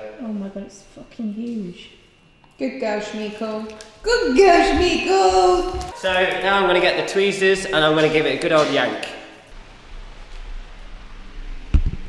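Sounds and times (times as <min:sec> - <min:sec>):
rustling and handling noise: 0:03.5 - 0:06.6.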